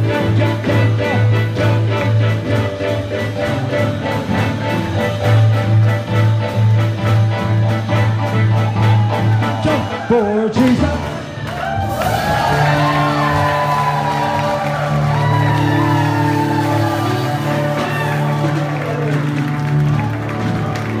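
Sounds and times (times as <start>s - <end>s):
crowd shouting and cheering: 0.0s - 21.0s
live band holding a chord: 0.0s - 21.0s.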